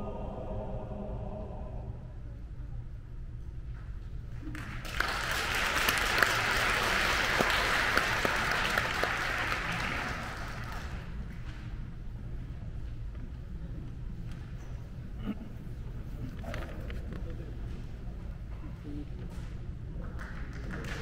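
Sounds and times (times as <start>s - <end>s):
audience applauding: 4.5s - 11.2s, 20.2s - 21.0s.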